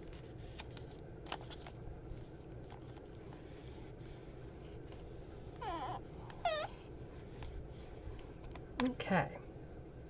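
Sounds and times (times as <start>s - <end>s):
pet whining: 5.5s - 6.9s.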